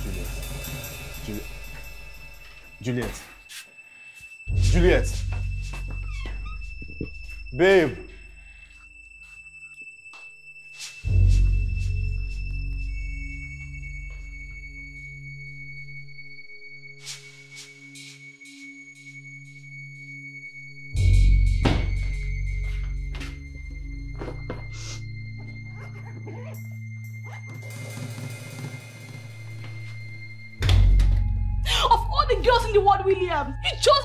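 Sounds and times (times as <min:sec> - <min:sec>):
synthesizer drone: 0:00.0 - 0:03.5, 0:04.2 - 0:34.0
low film score: 0:00.0 - 0:34.0.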